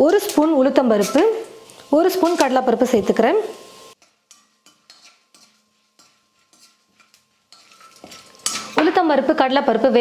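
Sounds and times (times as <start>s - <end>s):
oil sizzling: 0.0s - 10.0s
ladle scraping metal pan: 2.1s - 2.7s, 4.0s - 9.0s.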